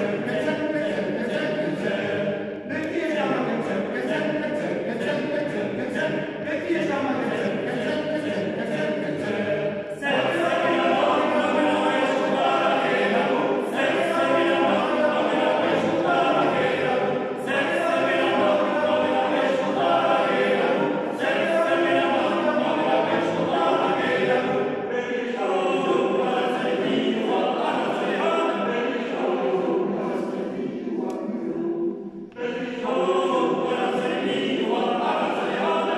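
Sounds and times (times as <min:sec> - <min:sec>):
small choir singing a cappella: 0:00.0 - 0:35.9.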